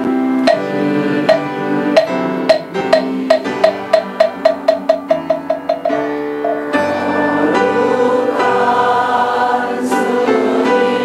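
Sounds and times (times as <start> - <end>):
held musical notes: 0.0 - 8.4
hollow wooden knocks: 0.5 - 0.7, 1.3 - 6.7.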